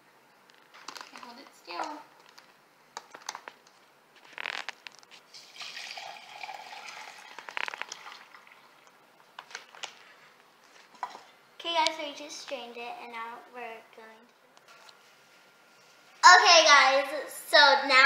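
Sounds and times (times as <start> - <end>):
tea pouring through strainer: 5.3 - 8.9.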